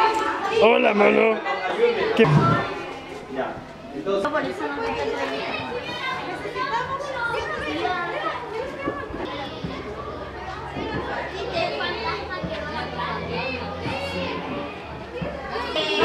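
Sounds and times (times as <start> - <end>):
children chattering: 0.0 - 16.0.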